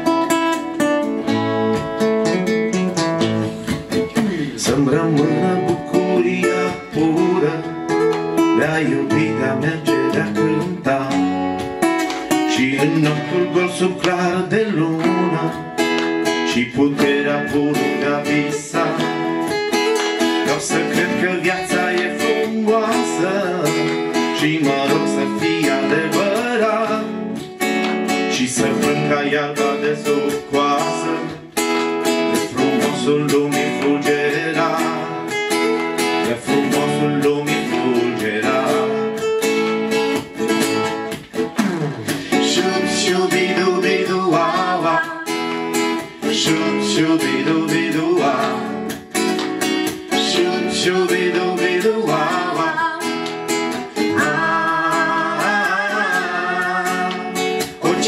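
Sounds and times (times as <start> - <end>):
acoustic guitars strummed and picked: 0.0 - 58.0.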